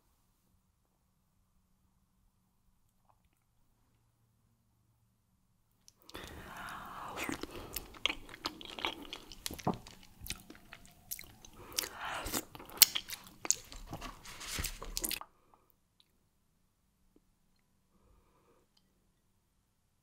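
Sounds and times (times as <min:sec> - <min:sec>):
wet chewing with smacks: 0:06.1 - 0:15.2.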